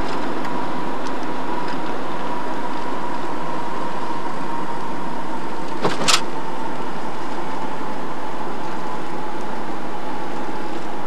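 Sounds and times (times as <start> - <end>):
car road and engine noise: 0.0 - 11.0
faint steady whine: 0.0 - 11.0.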